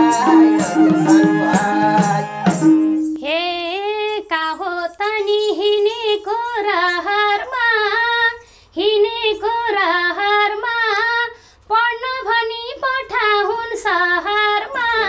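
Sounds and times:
woman singing unaccompanied: 0:00.0 - 0:15.0.

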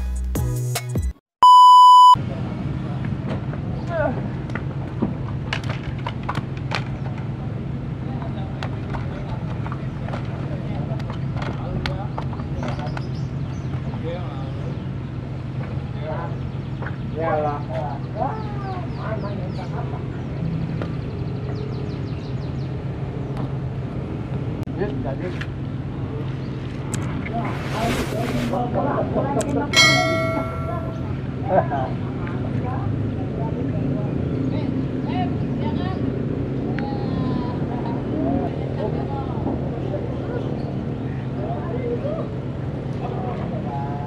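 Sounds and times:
background music with beat: 0:00.0 - 0:01.2
electronic beep: 0:01.4 - 0:02.2
outdoor background noise: 0:02.2 - 0:44.0.

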